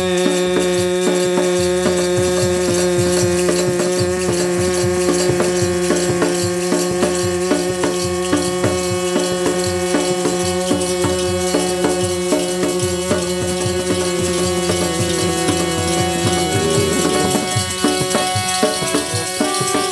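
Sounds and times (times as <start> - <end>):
hand drum beat: 0.0 - 19.9
harmonium drone: 0.0 - 19.9
brass jingles rattling: 2.8 - 19.9.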